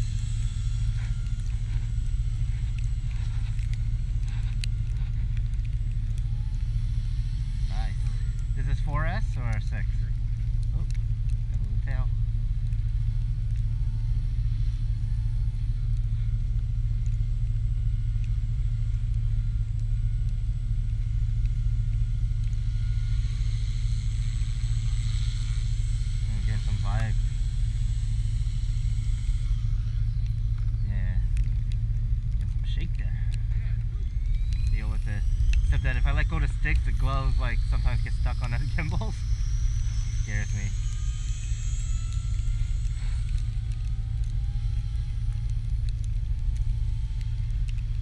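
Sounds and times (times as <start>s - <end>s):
electric motor whine: 0.0s - 48.0s
toy helicopter rotor drone: 0.0s - 48.0s.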